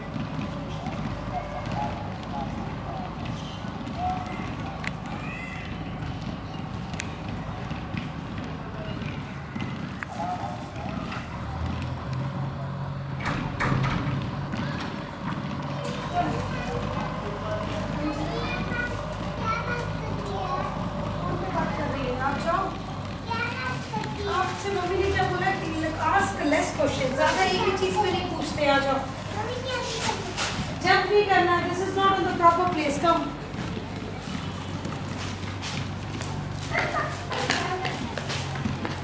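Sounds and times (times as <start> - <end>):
balls kicked or footsteps: 0.0 - 39.0
children calling and chattering: 0.0 - 39.0
child calling: 18.2 - 21.3, 23.2 - 24.5, 29.3 - 30.4.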